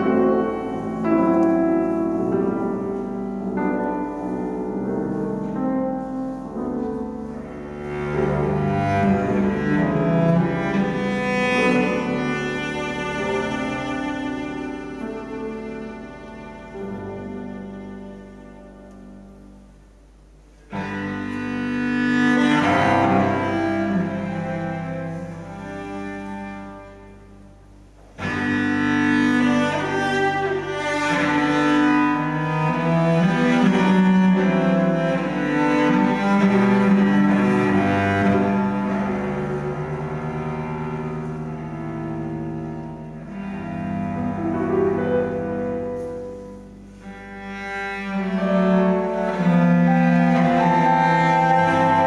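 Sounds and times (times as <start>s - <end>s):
cello long bowed note: 0.0s - 52.0s
piano note: 20.7s - 52.0s.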